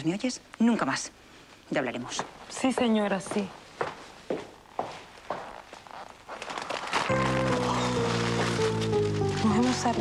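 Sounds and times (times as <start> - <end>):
footsteps walking: 1.8 - 10.0.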